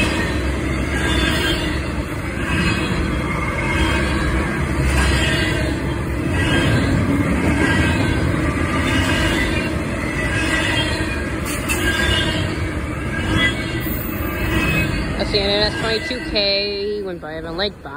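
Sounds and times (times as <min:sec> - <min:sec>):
high wheel squeals: 0:00.0 - 0:17.1
train wheels rumbling on rail: 0:00.0 - 0:17.9.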